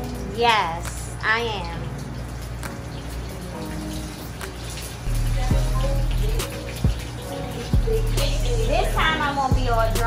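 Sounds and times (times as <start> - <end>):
food sizzling in hot oil: 0.0 - 10.0
background music with bass: 5.1 - 10.0.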